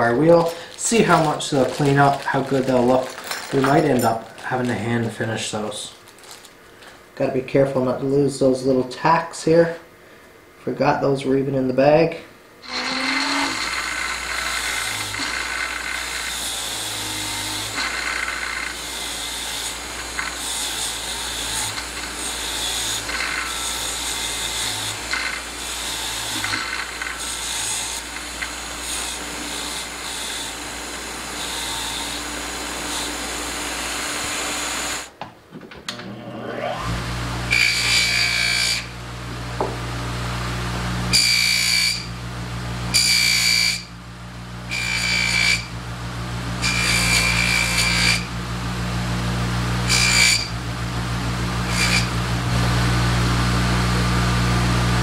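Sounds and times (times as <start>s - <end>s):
bench buffer motor humming: 12.6s - 35.1s, 35.9s - 55.0s
bench grinder motor running: 12.6s - 35.1s, 36.0s - 55.0s.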